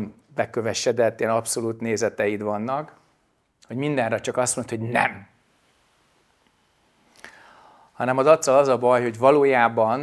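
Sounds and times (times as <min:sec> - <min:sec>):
man breathing in: 0:07.0 - 0:08.0.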